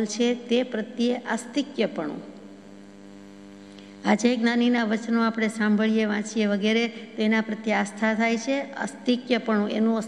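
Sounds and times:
woman speaking: 0.0 - 2.4, 4.0 - 10.0
electrical mains hum: 0.0 - 10.0.

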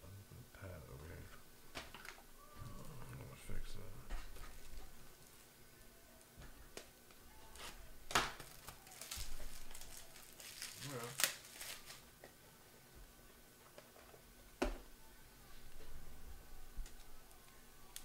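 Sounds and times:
plastic packaging crinkling: 7.5 - 12.1.

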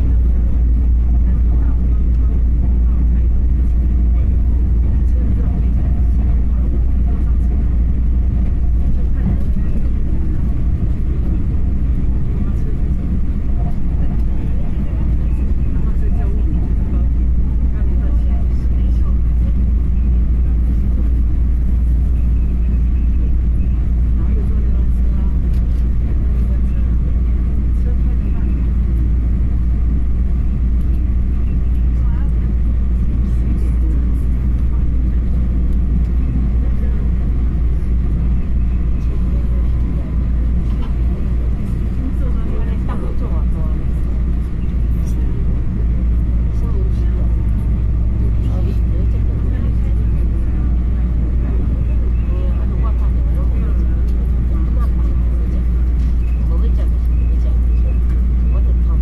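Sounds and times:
train rumble inside cabin: 0.0 - 59.0.

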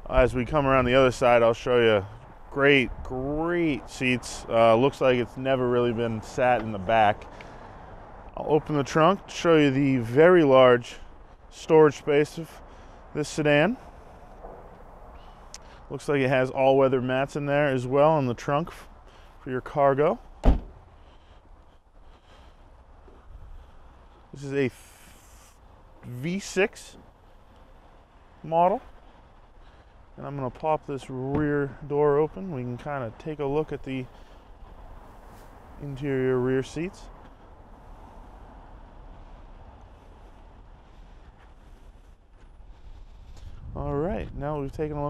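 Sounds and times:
wind rumble on microphone: 2.1 - 4.5, 22.8 - 23.9, 37.0 - 45.0
car trunk lid thump: 20.4 - 20.8.

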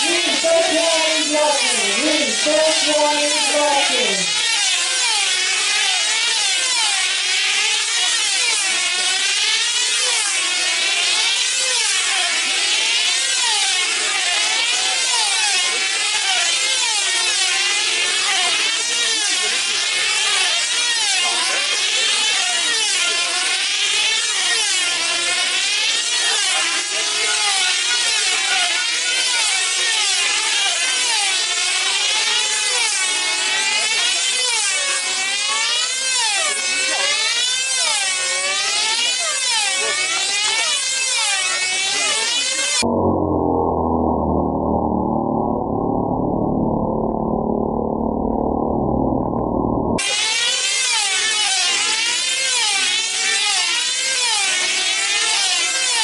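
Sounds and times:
model aircraft engines whining: 0.0 - 42.9, 50.0 - 56.0.

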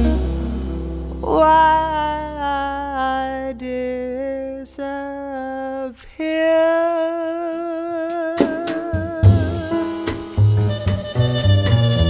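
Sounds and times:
band struck accent: 0.0 - 2.5, 9.0 - 12.0
woman singing long note: 1.2 - 9.9.

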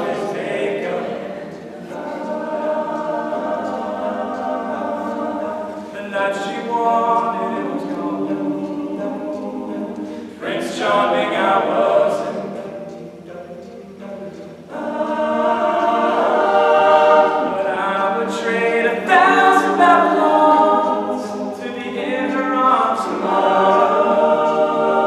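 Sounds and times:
male a cappella group singing: 0.0 - 25.0.

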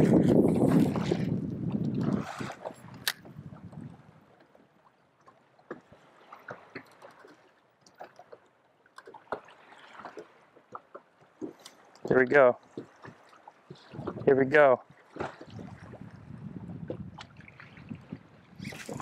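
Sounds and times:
small waves lapping against hull: 0.0 - 19.0.

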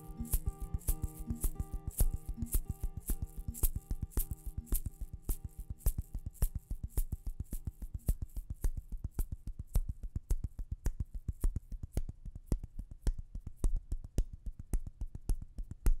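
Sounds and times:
shaker hiss: 0.0 - 9.3
percussion beat: 0.0 - 16.0.

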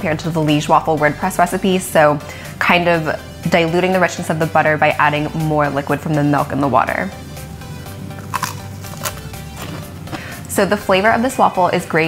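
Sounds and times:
soft background music: 0.0 - 12.0
waffle crunching being chewed: 8.1 - 10.2.

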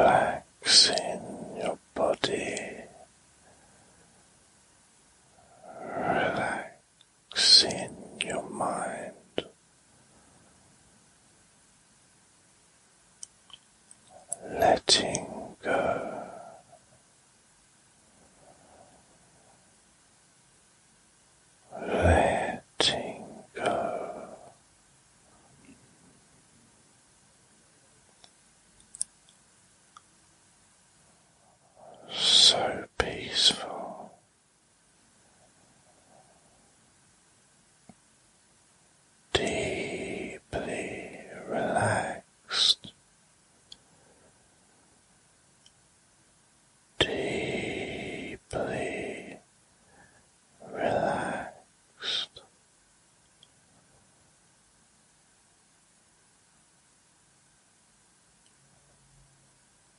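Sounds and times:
man whispering: 0.0 - 3.6, 5.3 - 9.6, 14.0 - 17.0, 21.6 - 24.6, 31.3 - 34.3, 39.3 - 43.0, 47.0 - 49.5, 50.6 - 52.5.

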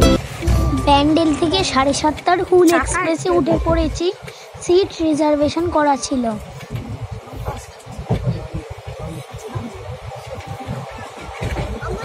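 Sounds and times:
train rumbling inside coach: 0.0 - 12.0.

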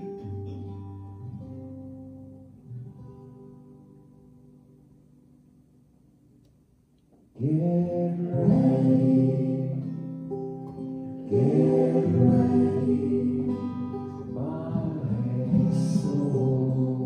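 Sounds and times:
acoustic guitar strumming: 0.0 - 5.4, 7.4 - 17.0
voices singing held notes: 7.4 - 10.0, 11.2 - 17.0.

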